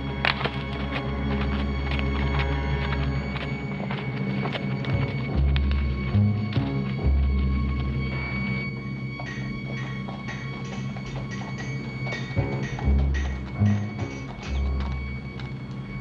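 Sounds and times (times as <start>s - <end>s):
orchestral western underscore: 0.0s - 16.0s
mallet percussion tapping: 9.3s - 15.0s.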